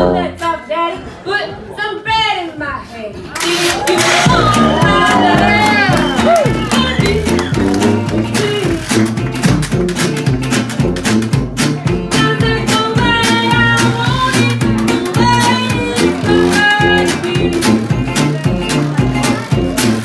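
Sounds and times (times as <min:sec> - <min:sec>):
tuba bass line: 0:00.0 - 0:00.4, 0:04.0 - 0:20.0
lead horn line: 0:03.4 - 0:09.4
strummed guitars: 0:03.7 - 0:20.0
woman singing: 0:03.8 - 0:09.0, 0:12.0 - 0:19.8.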